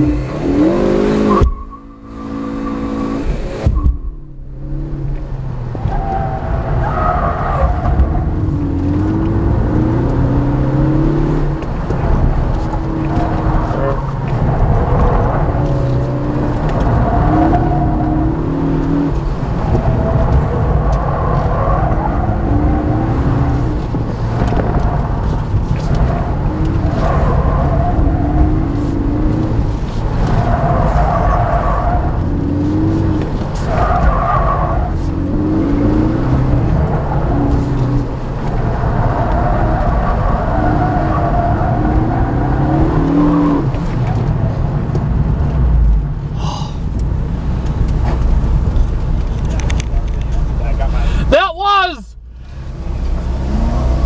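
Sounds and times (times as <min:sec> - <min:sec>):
car engine revving: 0:00.0 - 0:51.2, 0:52.2 - 0:54.0.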